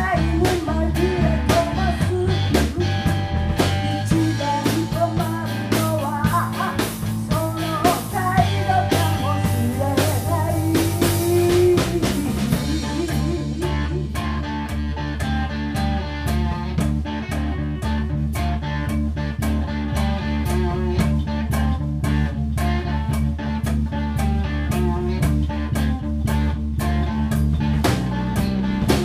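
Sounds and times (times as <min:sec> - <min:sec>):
electric guitar bending notes: 0:00.0 - 0:29.0
live rock band playing: 0:00.0 - 0:29.0.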